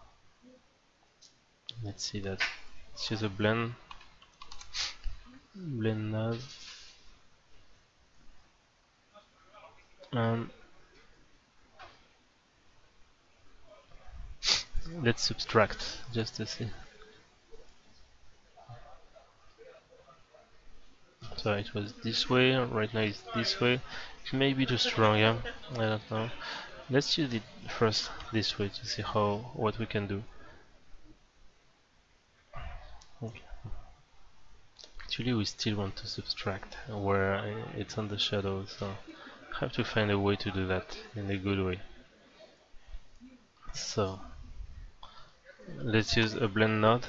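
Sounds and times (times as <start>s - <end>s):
man speaking: 1.7s - 3.8s, 5.5s - 6.6s, 9.6s - 10.6s, 14.5s - 17.0s, 21.2s - 30.4s, 35.0s - 42.0s, 43.7s - 44.4s, 45.7s - 47.0s
computer mouse clicking: 3.9s - 4.8s
short sharp hiss: 4.6s - 5.1s, 6.3s - 7.2s, 14.4s - 14.8s
short breath-like noise: 23.8s - 24.2s.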